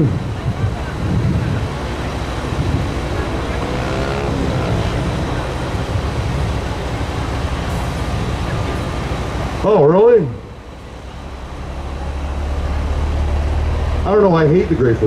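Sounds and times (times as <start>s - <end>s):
vehicle engine running: 0.0s - 15.0s.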